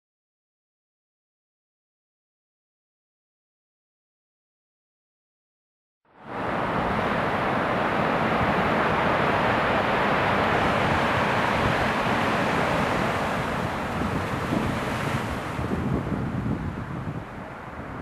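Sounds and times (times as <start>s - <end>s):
surf washing over rocky shore: 6.2s - 18.0s
wind on microphone: 6.3s - 18.0s.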